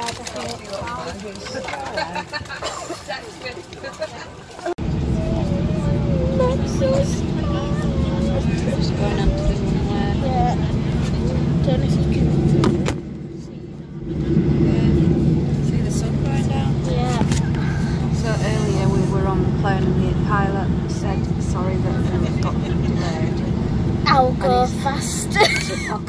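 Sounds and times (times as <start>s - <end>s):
voices: 0.0s - 26.0s
airliner engines droning: 4.7s - 26.0s
cabin air hum: 4.8s - 26.0s.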